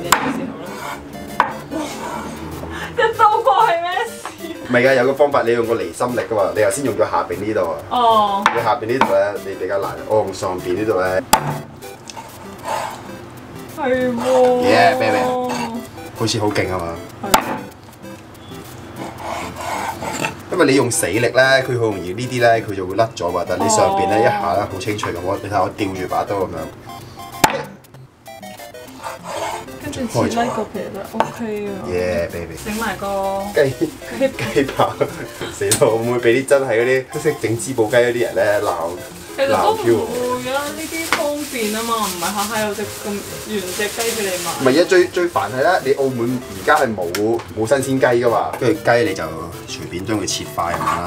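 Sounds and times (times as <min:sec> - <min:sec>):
faint background music: 0:00.0 - 0:51.0
cleaver chopping on wooden board: 0:00.1 - 0:00.4, 0:17.3 - 0:17.7, 0:27.4 - 0:27.8
cleaver chopping onto wooden board: 0:27.4 - 0:27.8.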